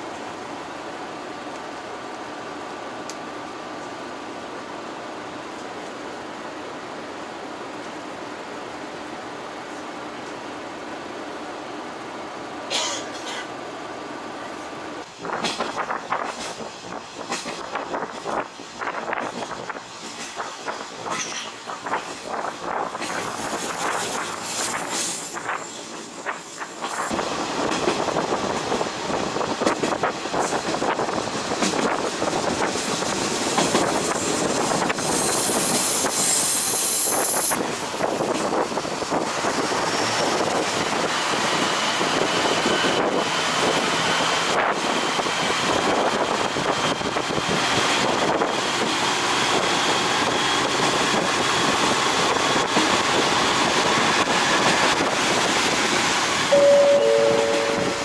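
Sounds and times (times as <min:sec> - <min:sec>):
wheels rushing on rail: 0:00.0 - 0:58.0
high squeal: 0:56.5 - 0:58.0
passing air rush: 0:56.5 - 0:58.0.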